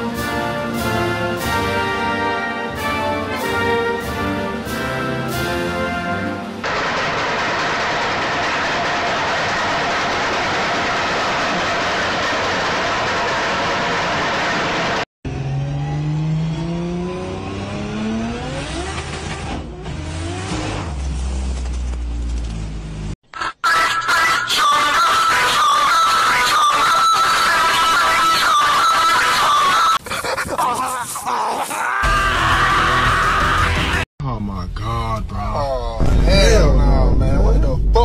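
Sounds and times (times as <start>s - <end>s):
loud rushing noise: 6.5s - 15.0s
car engine revving: 11.4s - 23.2s.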